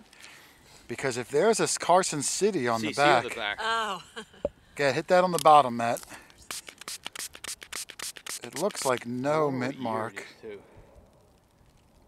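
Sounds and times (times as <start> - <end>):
spray bottle squirting: 6.3 - 9.0.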